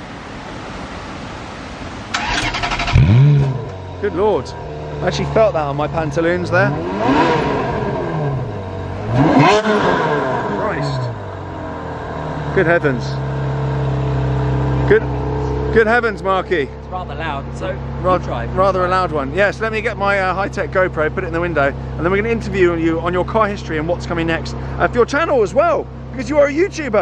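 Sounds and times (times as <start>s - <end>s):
car engine idling: 0.1s - 27.0s
starter motor cranking: 2.2s - 3.5s.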